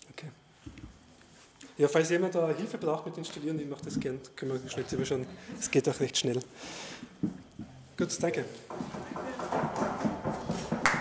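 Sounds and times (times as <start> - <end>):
knocks and shuffling: 7.2 - 11.0.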